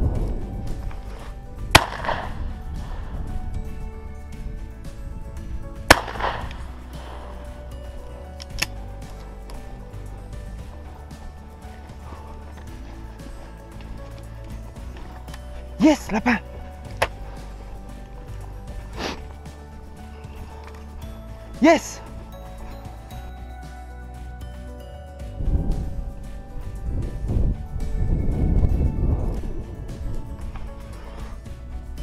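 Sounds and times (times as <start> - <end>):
background music: 0.0 - 32.0
shotgun shots with echo: 1.8 - 2.4, 5.9 - 7.2.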